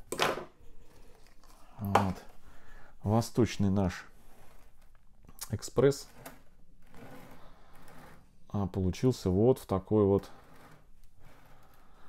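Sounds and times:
glass pot scraping on table: 3.4 - 5.0, 5.8 - 8.6, 9.2 - 12.0.

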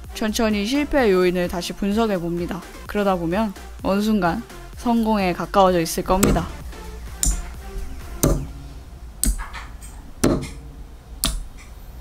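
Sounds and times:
relays clicking: 6.1 - 8.6, 9.2 - 12.0.

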